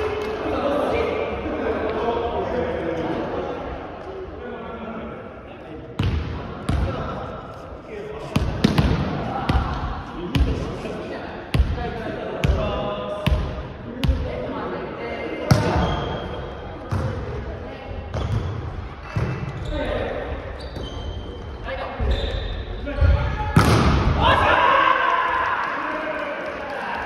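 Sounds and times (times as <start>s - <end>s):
volleyball smacks echoing: 23.6s - 24.2s.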